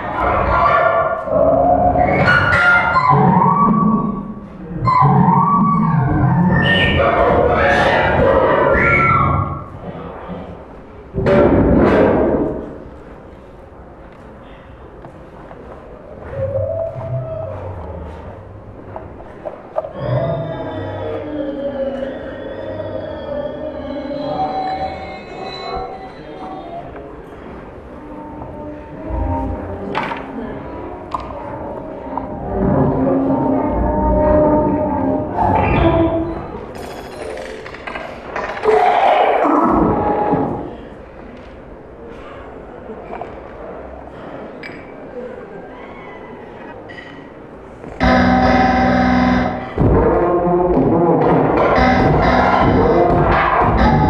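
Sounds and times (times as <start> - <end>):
gliding electronic tones: 48.0 - 49.8, 51.6 - 54.0
low electronic drone: 48.0 - 54.0.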